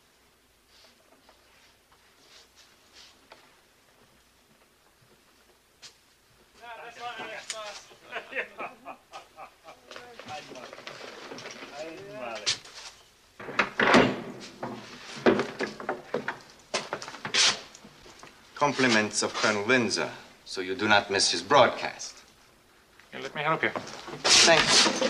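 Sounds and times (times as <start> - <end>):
speech: 6.6 - 8.5, 9.7 - 10.7, 11.7 - 12.6, 18.6 - 22.2, 23.1 - 25.0.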